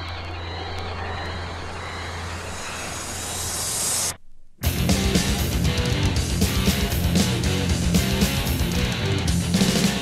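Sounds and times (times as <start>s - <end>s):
low hum: 0.0s - 7.9s
bright hiss rising: 1.4s - 4.2s.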